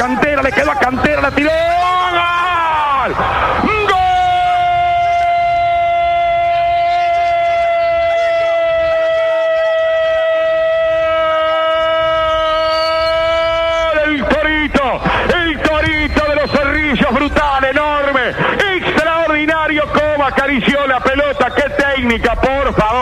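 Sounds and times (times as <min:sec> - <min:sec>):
commentator rapid speech: 0:00.0 - 0:07.8, 0:13.1 - 0:23.0
commentator shouting goal: 0:00.0 - 0:23.0.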